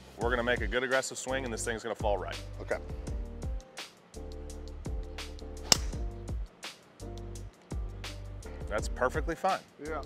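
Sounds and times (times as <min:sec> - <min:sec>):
background music with steady beat: 0:00.0 - 0:10.0
golf driver striking ball: 0:05.6 - 0:06.1.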